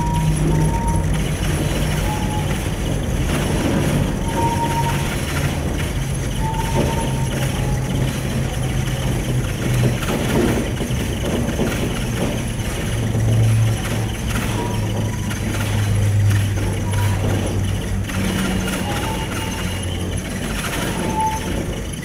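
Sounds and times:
gondola cabin hum and rumble: 0.0s - 22.0s.

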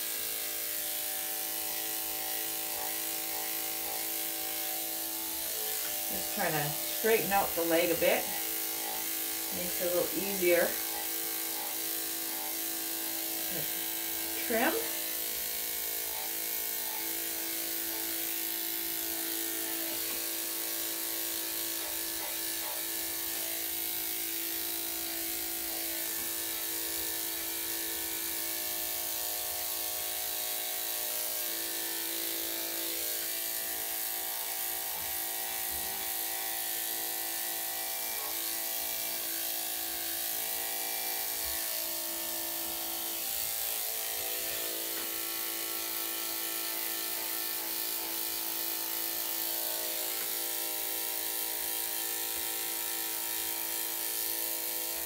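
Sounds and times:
electric clippers motor hum: 0.0s - 55.0s.

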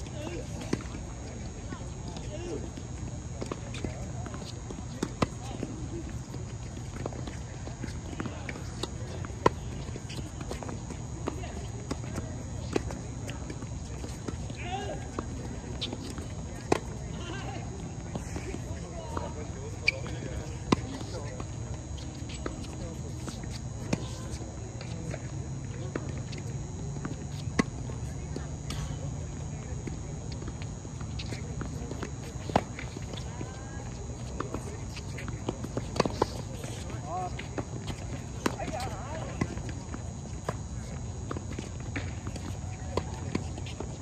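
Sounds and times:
players' footsteps: 0.0s - 44.0s
tennis balls hit and bouncing: 0.0s - 44.0s.

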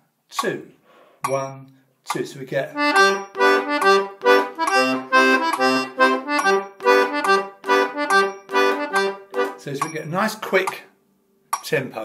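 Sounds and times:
button accordion playing: 2.8s - 9.7s.

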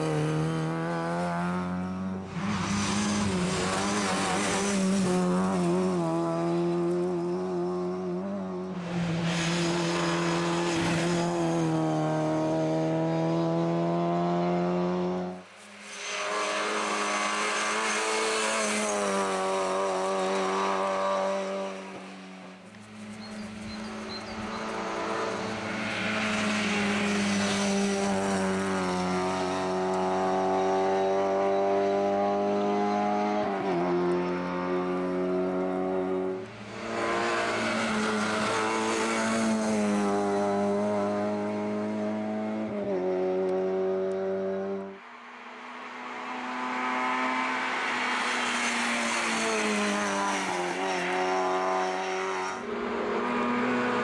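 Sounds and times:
rally car engine revving: 0.0s - 22.2s, 23.2s - 44.9s.

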